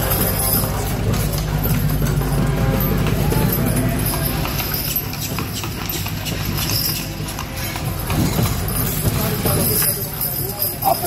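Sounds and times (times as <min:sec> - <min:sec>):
music: 0:00.0 - 0:05.4
hooves clip-clopping on pavement: 0:00.0 - 0:11.0.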